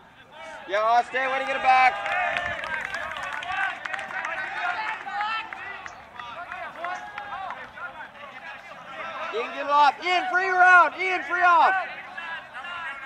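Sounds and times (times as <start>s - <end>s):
people shouting across a field: 0.0s - 13.0s.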